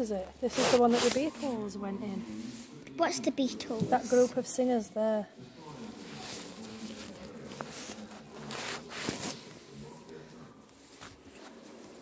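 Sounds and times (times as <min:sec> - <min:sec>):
rustling and handling noises: 0:00.0 - 0:01.7, 0:05.6 - 0:12.0
faint voices talking: 0:00.0 - 0:12.0.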